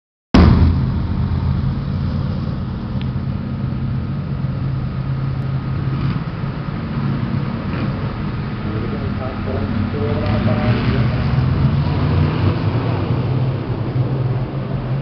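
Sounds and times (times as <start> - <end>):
race car engines droning: 0.4 - 15.0.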